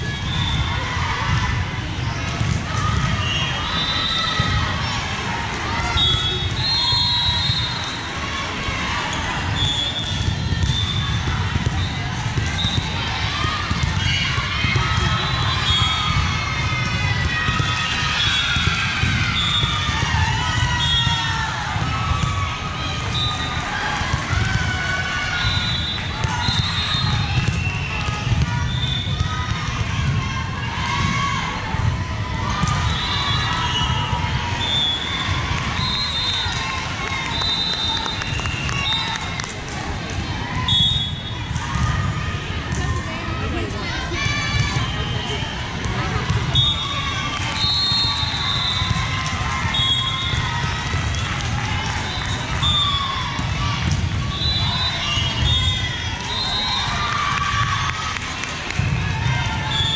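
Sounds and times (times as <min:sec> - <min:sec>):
spectators chattering: 0:00.0 - 0:59.9
players' feet on court: 0:07.3 - 0:59.9.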